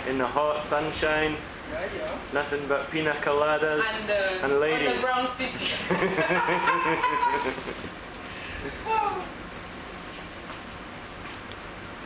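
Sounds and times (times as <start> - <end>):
steady background noise: 0.0 - 12.0
woman laughing: 5.6 - 7.9.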